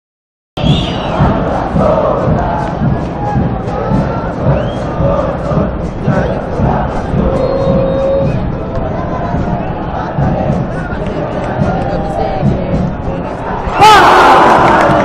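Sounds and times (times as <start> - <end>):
crowd singing a chant: 0.6 - 15.0.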